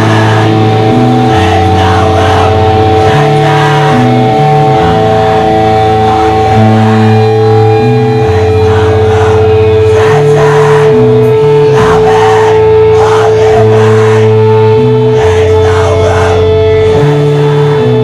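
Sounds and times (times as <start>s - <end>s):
held high guitar tone: 0.0s - 18.0s
rock band playing loud: 0.0s - 18.0s.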